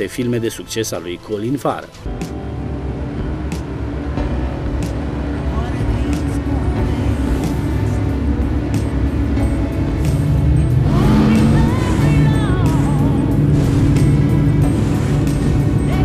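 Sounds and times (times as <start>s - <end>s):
film music: 0.0s - 16.0s
speedboat engine rumbling: 2.0s - 16.0s.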